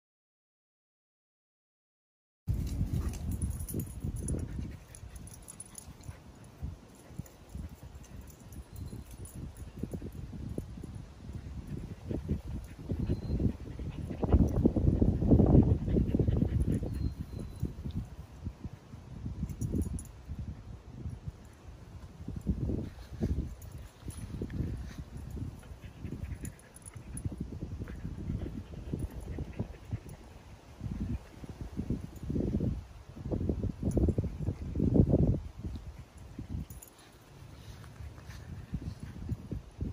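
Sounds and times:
wind buffeting microphone: 0:02.5 - 0:39.9
dog panting: 0:11.6 - 0:17.6, 0:23.7 - 0:30.5.

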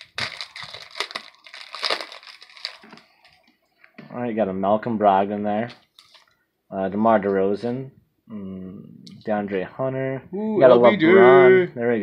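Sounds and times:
foil wrapper crinkling: 0:00.0 - 0:03.5, 0:05.7 - 0:06.4
handling of cards: 0:05.7 - 0:06.4.

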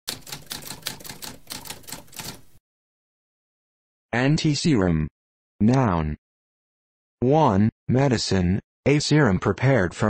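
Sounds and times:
typewriter keys clicking: 0:00.1 - 0:02.4.

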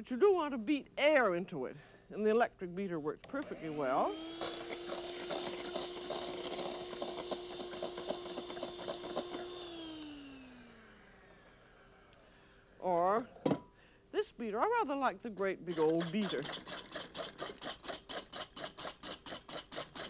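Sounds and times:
electric beater motor whine: 0:03.4 - 0:12.2
motor winding down: 0:03.5 - 0:12.2.

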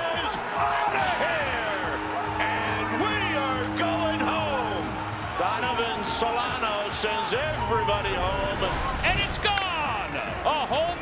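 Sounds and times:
background music: 0:00.0 - 0:11.0
commentator speaking: 0:01.0 - 0:11.0.

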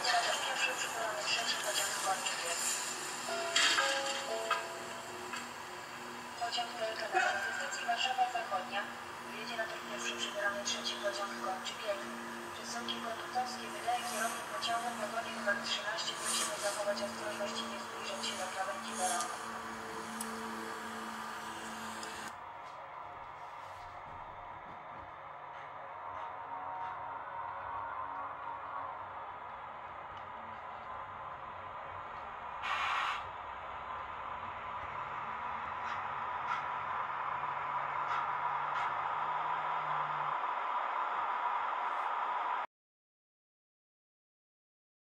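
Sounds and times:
model train whirring on rails: 0:00.0 - 0:22.5, 0:23.8 - 0:42.6
brief hiss: 0:32.6 - 0:33.2.

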